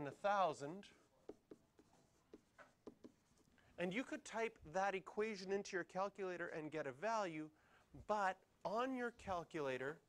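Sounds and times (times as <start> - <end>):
stylus tapping and scratching: 0.0 - 0.6, 1.2 - 3.7.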